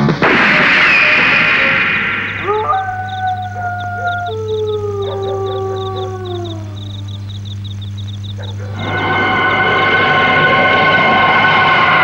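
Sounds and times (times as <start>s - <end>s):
dog howling: 2.3s - 9.9s.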